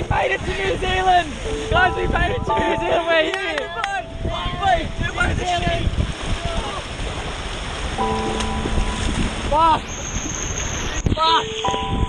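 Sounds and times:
held background music chord: 0:01.4 - 0:05.4, 0:08.0 - 0:09.6
water sloshing in paddling pool: 0:05.4 - 0:11.0.

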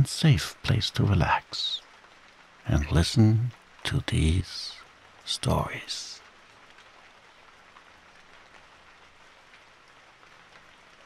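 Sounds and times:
gentle rain falling: 0:00.0 - 0:11.0.

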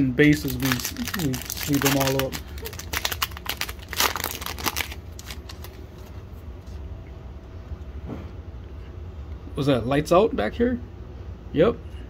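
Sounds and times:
steady low hum: 0:00.0 - 0:12.0
plastic sleeve crinkling: 0:00.3 - 0:06.2
card handling: 0:00.5 - 0:06.2.

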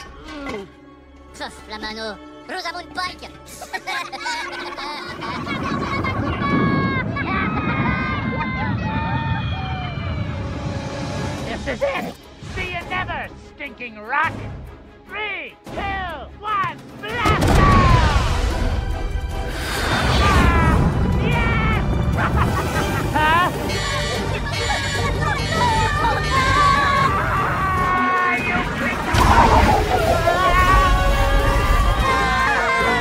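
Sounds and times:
film music: 0:00.0 - 0:33.0.

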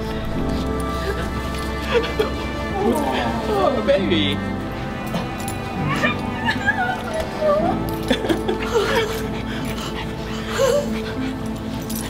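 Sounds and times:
background music: 0:00.0 - 0:12.0
dog whimpering: 0:05.9 - 0:12.0.

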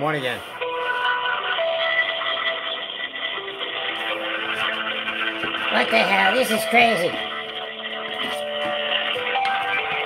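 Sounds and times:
hold music over phone speaker: 0:00.0 - 0:10.0.

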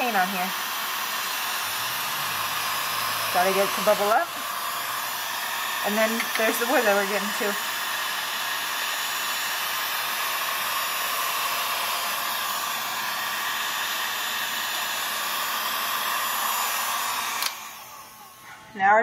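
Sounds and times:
heat gun blowing: 0:00.0 - 0:18.8.

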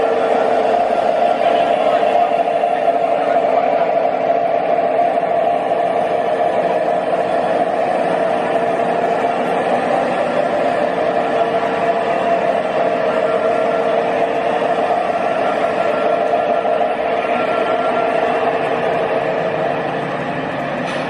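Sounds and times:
model train wheels rumbling on rails: 0:00.0 - 0:21.0.

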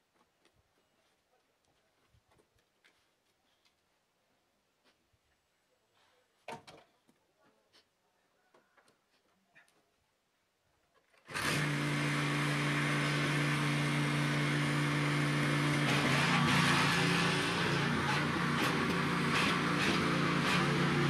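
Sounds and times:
small tiller engine running: 0:11.2 - 0:21.0.

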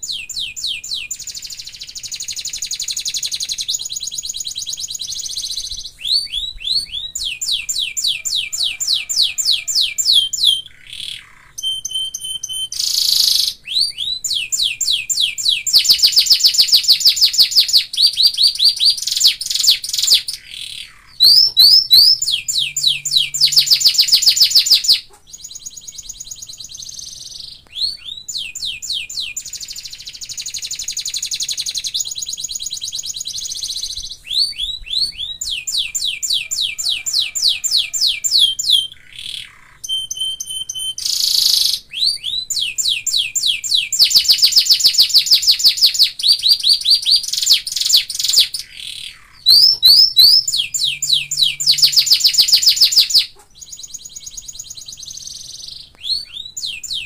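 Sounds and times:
canary singing trills: 0:00.0 - 0:57.0.

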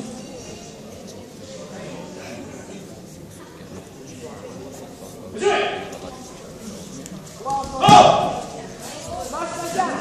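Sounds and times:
man shouting in echoing hall: 0:05.4 - 0:05.9, 0:07.5 - 0:08.4.

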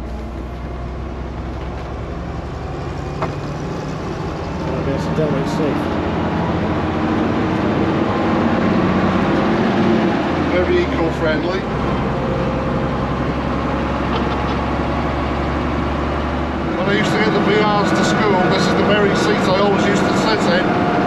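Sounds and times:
bus diesel engine running: 0:00.0 - 0:21.0.

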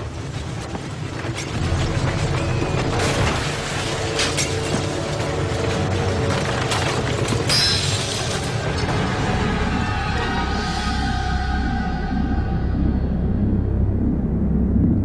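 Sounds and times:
deep rumble: 0:00.0 - 0:15.0
glass breaking: 0:01.3 - 0:09.2.

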